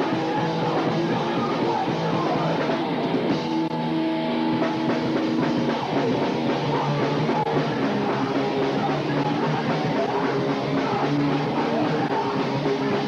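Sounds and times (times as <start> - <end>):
drum kit: 0.0 - 13.0
electric guitar: 0.0 - 13.0
punk band playing live: 0.0 - 13.0.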